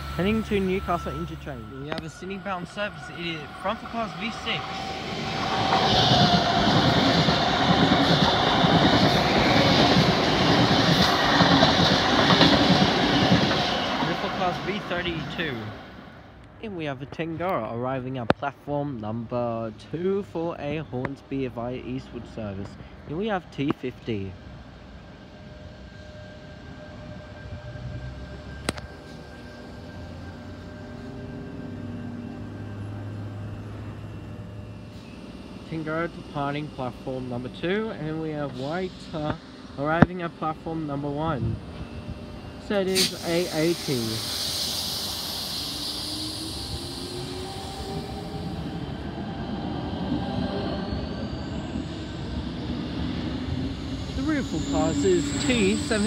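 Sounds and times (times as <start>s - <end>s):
electric train whine and rumble: 0.0s - 56.0s.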